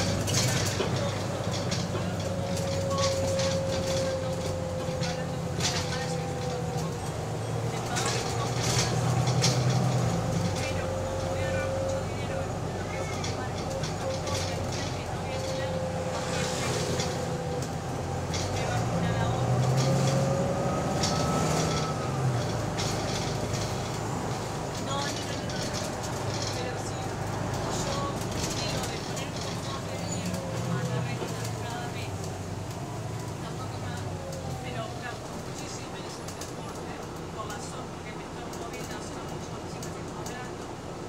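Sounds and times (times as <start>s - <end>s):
bus engine whining: 0.0s - 41.0s.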